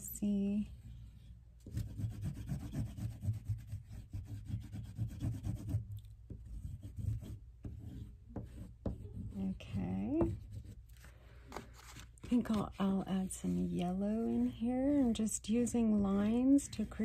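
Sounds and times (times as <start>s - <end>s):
oil pastel rubbing on paper: 0.6s - 5.8s, 6.4s - 17.0s.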